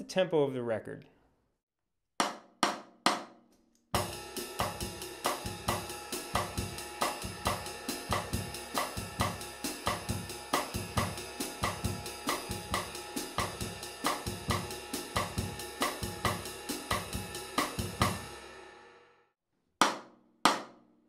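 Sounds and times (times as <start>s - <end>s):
ride cymbal strokes: 4.0s - 18.6s.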